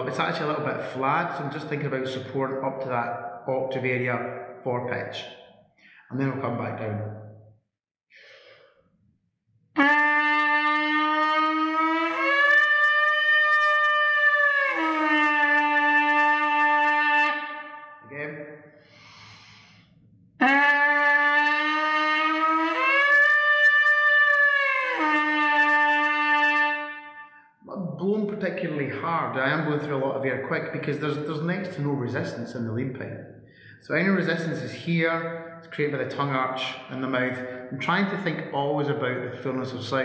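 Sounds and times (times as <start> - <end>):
trumpet leadpipe buzz: 9.7 - 18.1, 20.4 - 27.6.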